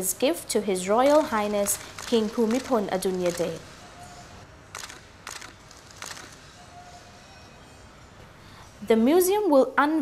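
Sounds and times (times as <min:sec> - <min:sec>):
banquet hall ambience: 0:00.5 - 0:08.9.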